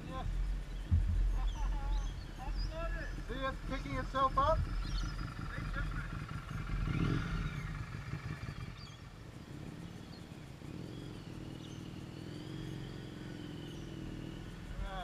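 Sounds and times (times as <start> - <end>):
motorcycle engine pulling away: 0.0 - 15.0.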